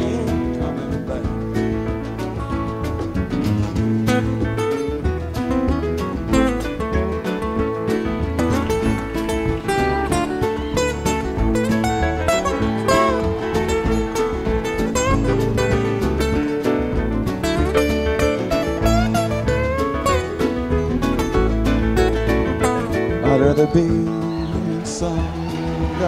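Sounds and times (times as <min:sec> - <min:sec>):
picked acoustic guitar lead: 0:00.0 - 0:26.0
steady bass line: 0:00.0 - 0:26.0
strummed acoustic rhythm guitar: 0:00.0 - 0:26.0.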